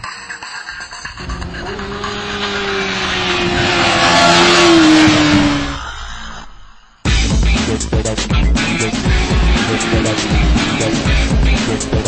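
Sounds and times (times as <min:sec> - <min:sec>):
motorcycle passing at high revs: 0:01.2 - 0:05.8, 0:08.9 - 0:12.0.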